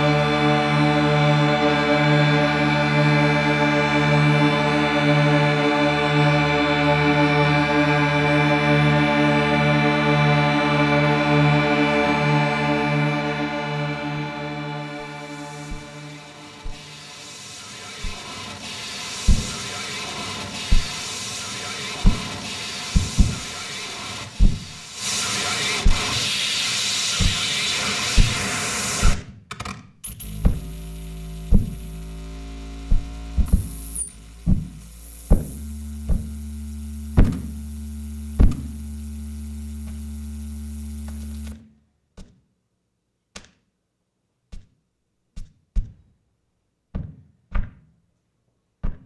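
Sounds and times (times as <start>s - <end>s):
electronic noise music: 13.8s - 26.3s, 30.1s - 41.6s
held tones: 30.0s - 41.6s
sharp clicks: 30.0s - 41.6s
low steady hum: 30.1s - 41.6s.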